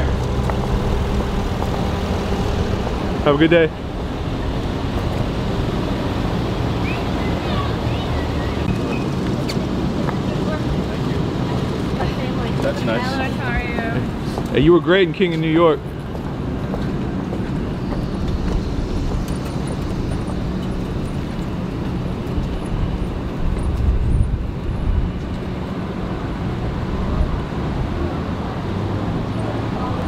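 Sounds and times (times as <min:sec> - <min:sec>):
car engines rumbling: 0:00.0 - 0:30.0.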